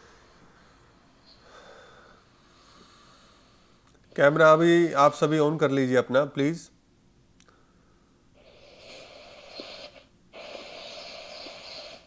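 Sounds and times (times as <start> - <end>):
hissing breath into microphone: 8.4 - 12.0.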